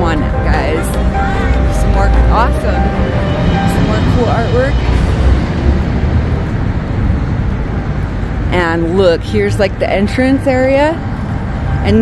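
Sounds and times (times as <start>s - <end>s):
low rumbling outdoor noise: 0.0s - 12.0s.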